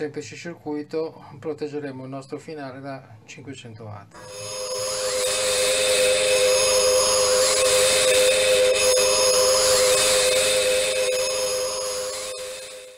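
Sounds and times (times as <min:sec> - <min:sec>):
shimmering tones sweeping up and down: 0:04.2 - 0:12.9
steady electronic drone: 0:04.2 - 0:12.9.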